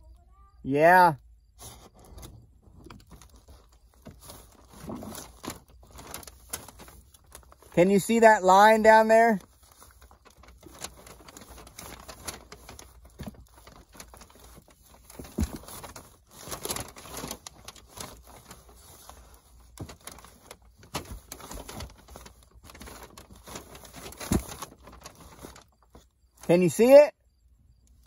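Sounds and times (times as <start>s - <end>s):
plastic wrap rustling and crinkling: 1.6s - 26.5s.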